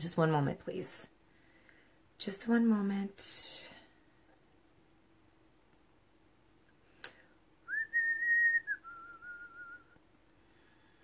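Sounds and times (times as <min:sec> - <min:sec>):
person whistling softly: 0:07.6 - 0:10.0.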